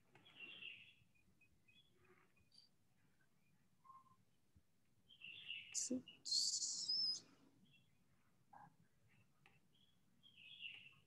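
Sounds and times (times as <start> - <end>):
bird chirping: 0.1 - 4.4, 5.0 - 11.0.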